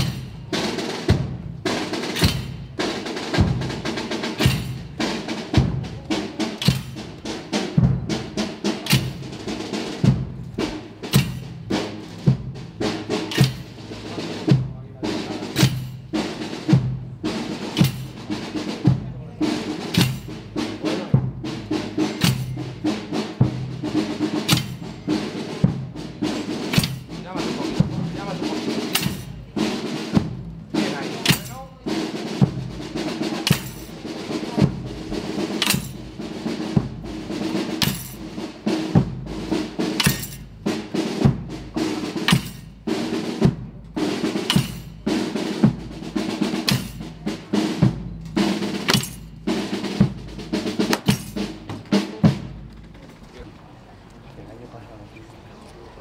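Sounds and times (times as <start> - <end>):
drum corps march beat: 0.0 - 53.5
snare rolls: 1.7 - 7.8, 8.8 - 9.3, 13.2 - 13.8, 33.0 - 41.2, 41.8 - 53.6.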